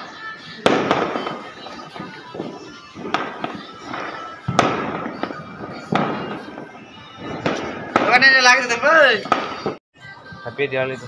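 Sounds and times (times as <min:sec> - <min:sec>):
firecrackers banging with echo: 0:00.0 - 0:09.8.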